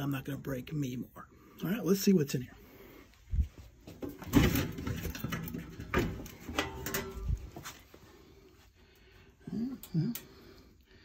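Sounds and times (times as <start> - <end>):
metal housing knocking and rattling: 4.0 - 7.5.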